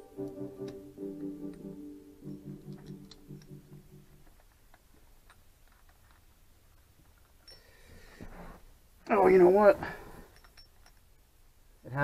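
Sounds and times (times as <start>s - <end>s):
tools clicking: 2.3s - 7.7s, 10.3s - 11.2s.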